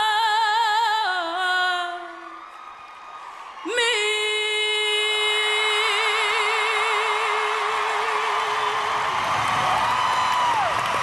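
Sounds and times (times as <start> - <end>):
woman singing a ballad: 0.0 - 2.4, 3.6 - 8.7.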